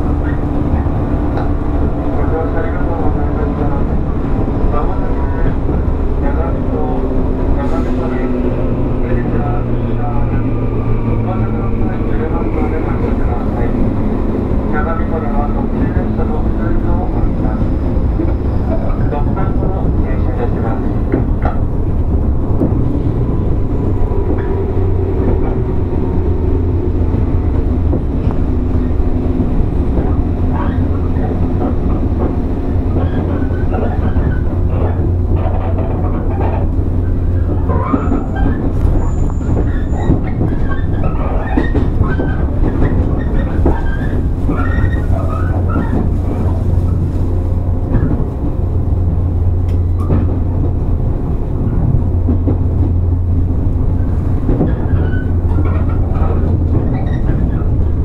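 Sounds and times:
electric train humming: 0:00.0 - 0:58.0.

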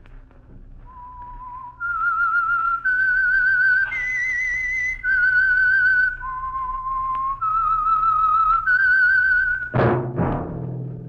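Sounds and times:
whistled melody: 0:00.8 - 0:09.8.

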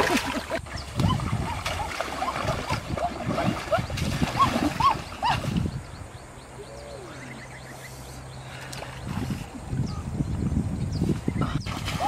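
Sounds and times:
rising and falling calls: 0:06.4 - 0:08.2.

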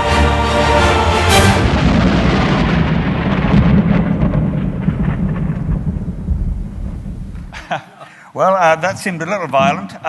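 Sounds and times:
explosion rumble: 0:01.3 - 0:07.8.

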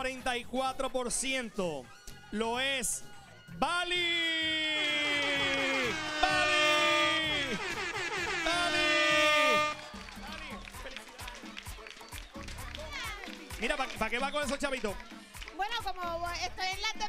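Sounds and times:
man shouting drawn-out notes: 0:04.0 - 0:09.9
audience cheering and clapping: 0:04.5 - 0:15.6.

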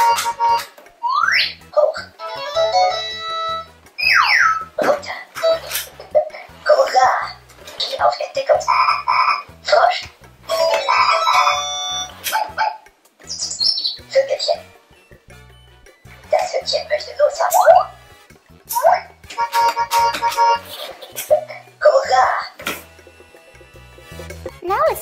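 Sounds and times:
toy electronic tunes and effects: 0:00.0 - 0:04.8, 0:10.4 - 0:25.0
toy voice clips: 0:04.8 - 0:12.6, 0:16.4 - 0:17.9, 0:18.7 - 0:22.6.

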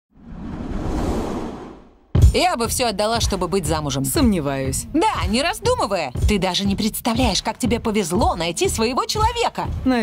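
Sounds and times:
whoosh sound effect: 0:00.1 - 0:02.1.

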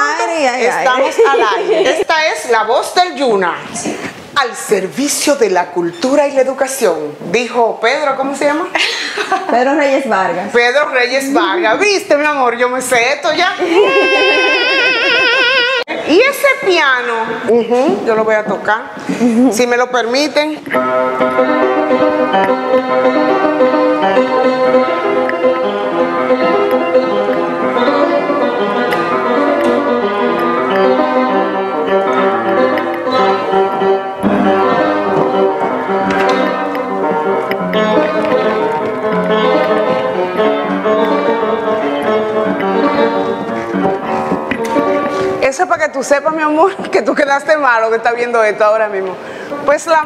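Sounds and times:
grand piano playing: 0:09.4 - 0:50.0.

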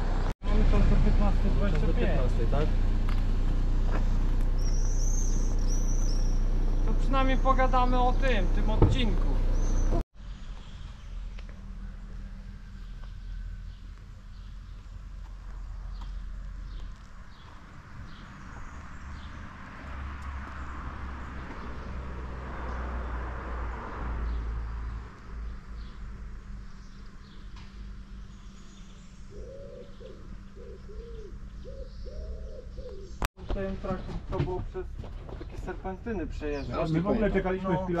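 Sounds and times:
men's voices: 0:00.5 - 0:02.8, 0:33.5 - 0:38.0
birds chirping: 0:00.5 - 0:23.2, 0:23.8 - 0:38.0
bird low repeated call: 0:29.3 - 0:33.2.

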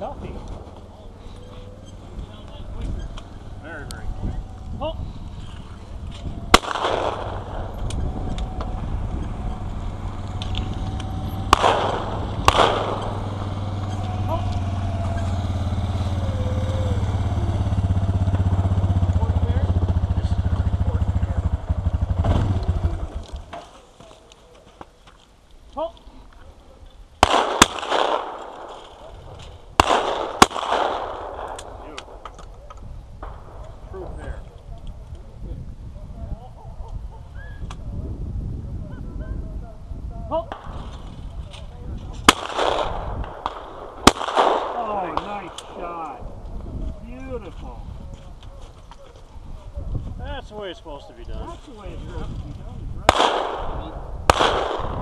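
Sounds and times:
steady low rumble: 0:00.0 - 0:23.5, 0:27.1 - 0:50.5, 0:51.2 - 0:55.0
shotgun shots with echo: 0:06.4 - 0:08.1, 0:11.3 - 0:13.6, 0:27.2 - 0:32.2, 0:42.2 - 0:46.0, 0:53.0 - 0:55.0.

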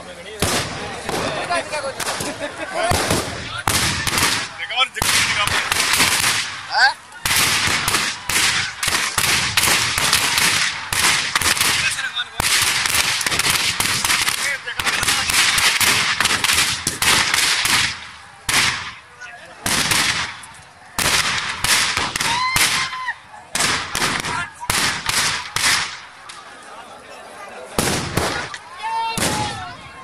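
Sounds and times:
firecrackers banging: 0:00.4 - 0:26.5, 0:27.8 - 0:29.7.

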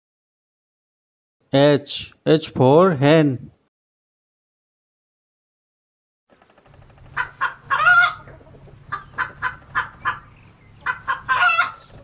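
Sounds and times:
hen clucking and cackling: 0:06.8 - 0:12.0.

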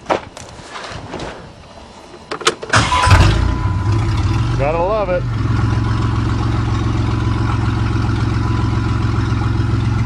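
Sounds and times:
van engine idling: 0:02.7 - 0:10.0.

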